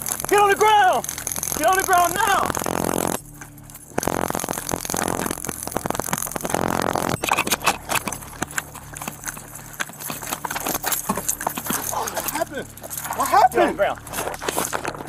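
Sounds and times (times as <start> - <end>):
sharp crack: 0.0 - 3.3, 3.9 - 8.7
gear rattling: 0.0 - 15.0
running footsteps on pavement: 7.7 - 15.0.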